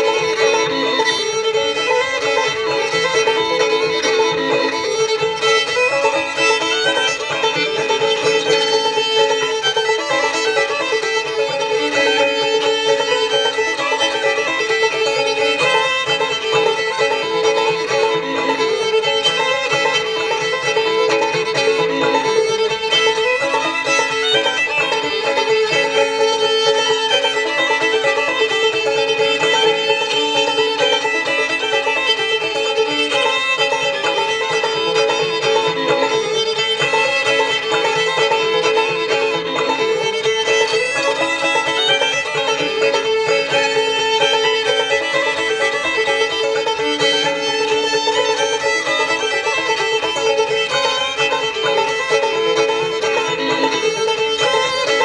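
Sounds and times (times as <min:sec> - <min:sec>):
banjo: 0:00.0 - 0:55.0
fiddle: 0:00.0 - 0:55.0.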